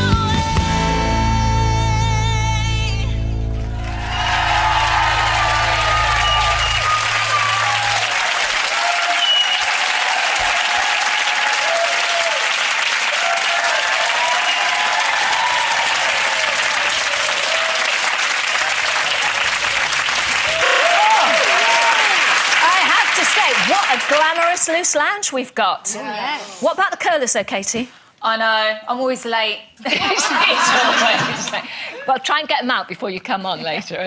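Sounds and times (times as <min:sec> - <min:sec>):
audience applauding: 0:03.5 - 0:24.9
shouts and whoops: 0:03.7 - 0:18.0, 0:20.4 - 0:22.8.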